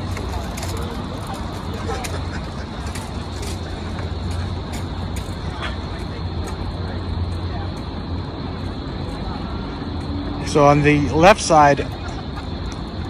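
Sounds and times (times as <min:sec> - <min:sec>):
faint voices: 0:00.0 - 0:13.0
traffic rumble: 0:00.0 - 0:13.0.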